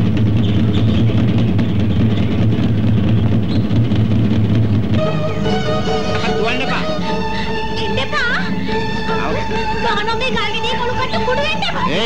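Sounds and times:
low rumbling drone: 0.0 - 12.0.

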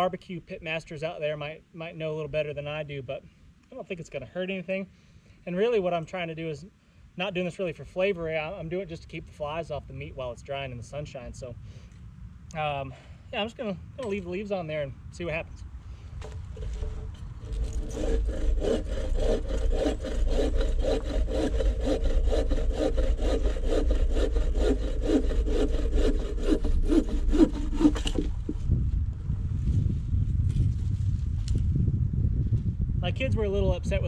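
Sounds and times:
bow saw cutting branch: 16.2 - 28.7.

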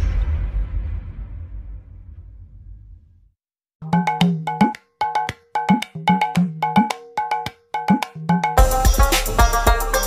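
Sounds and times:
bell-like percussion rhythm: 3.8 - 10.0.

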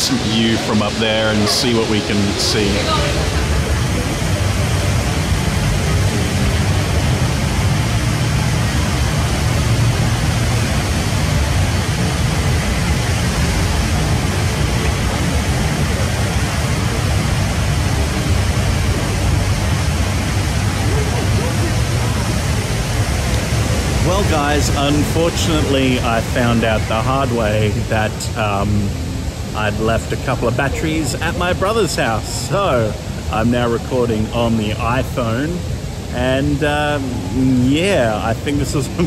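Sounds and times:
waterfall rushing into basin: 0.0 - 39.0.

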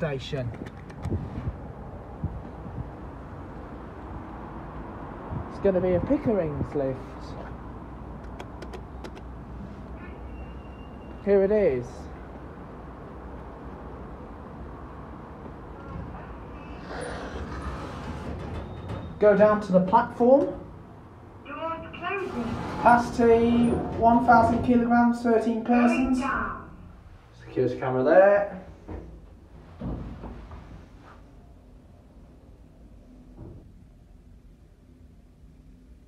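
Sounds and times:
lift doors sliding open: 15.4 - 20.0, 21.8 - 26.3.

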